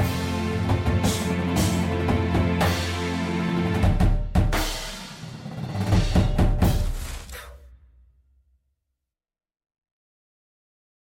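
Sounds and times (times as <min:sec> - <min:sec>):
drum ensemble hits: 0:03.8 - 0:07.4.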